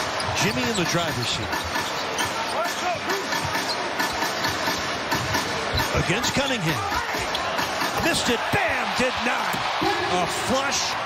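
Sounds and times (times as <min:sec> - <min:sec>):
arena crowd noise: 0:00.0 - 0:11.0
scattered voices: 0:00.3 - 0:10.9.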